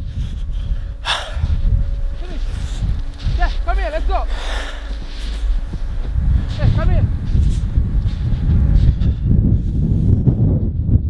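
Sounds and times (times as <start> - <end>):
breathy swishes: 0.0 - 3.5, 4.2 - 10.2
wind buffeting microphone: 0.0 - 11.0.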